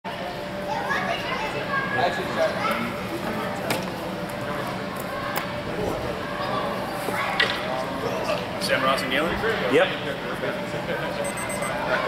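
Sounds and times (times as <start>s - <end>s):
indistinct background chatter: 0.1s - 12.0s.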